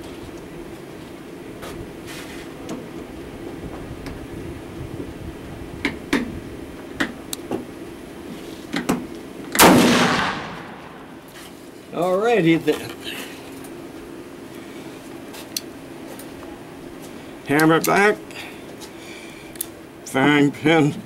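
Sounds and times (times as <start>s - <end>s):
pistol gunshot: 9.6s - 11.1s.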